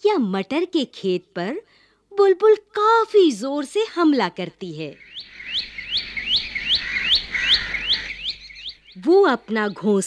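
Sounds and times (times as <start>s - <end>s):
bird calling upward notes: 5.0s - 9.9s.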